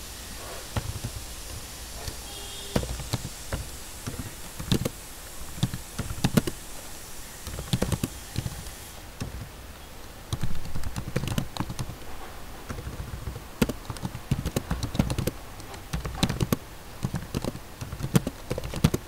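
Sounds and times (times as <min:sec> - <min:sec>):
keyboard keystroke clicks: 0:07.4 - 0:19.0.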